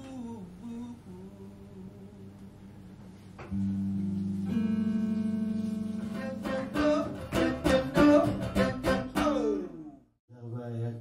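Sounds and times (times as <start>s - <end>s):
blues electric guitar: 3.5s - 9.7s.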